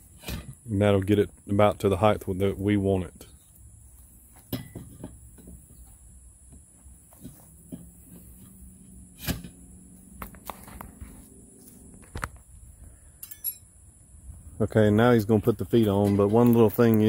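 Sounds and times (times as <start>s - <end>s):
metal tubes knocking into place: 4.4s - 5.8s.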